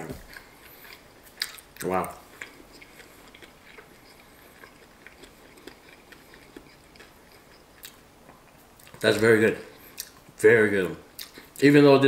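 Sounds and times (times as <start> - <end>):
person chewing crispy food: 0.0 - 10.3, 11.1 - 11.6.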